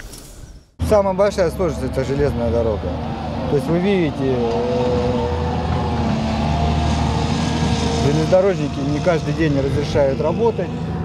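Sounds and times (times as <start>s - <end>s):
large engine running: 0.8s - 11.0s.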